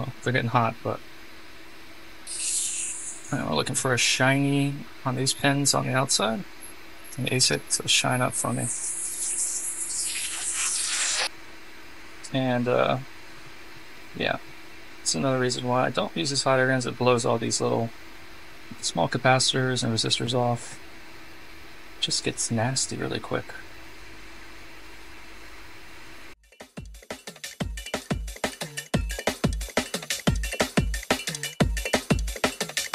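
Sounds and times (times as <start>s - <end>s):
hot air gun hissing: 2.3s - 3.5s, 8.3s - 11.3s
drum and bass music: 26.4s - 32.9s.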